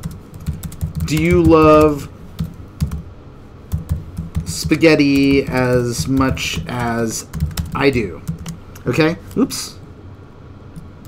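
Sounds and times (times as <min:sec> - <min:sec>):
computer keyboard typing: 0:00.0 - 0:03.0, 0:03.7 - 0:08.6.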